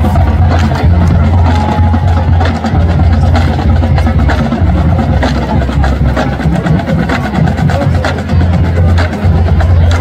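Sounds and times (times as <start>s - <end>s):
drum and percussion hits: 0.0s - 10.0s.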